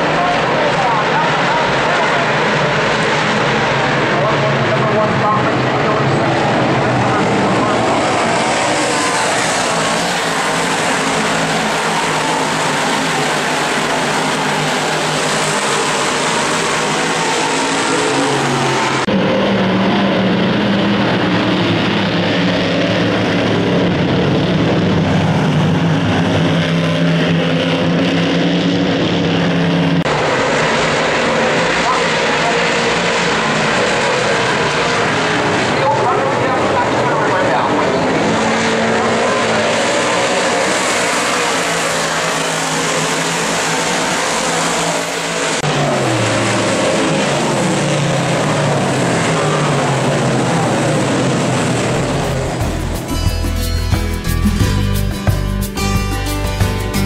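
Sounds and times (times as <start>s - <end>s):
cars passing close by: 0.0s - 53.6s
race car engines roaring: 0.0s - 57.0s.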